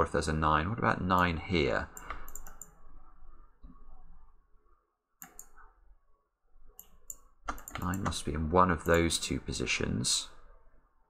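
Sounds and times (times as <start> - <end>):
computer mouse clicks: 2.0 - 2.8, 5.2 - 5.6, 6.8 - 8.2, 8.8 - 9.1.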